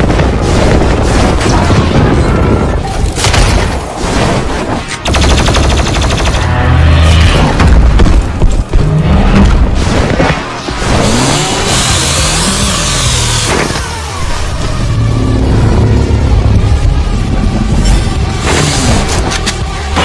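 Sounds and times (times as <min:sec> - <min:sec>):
machine-gun fire: 0:05.0 - 0:06.5.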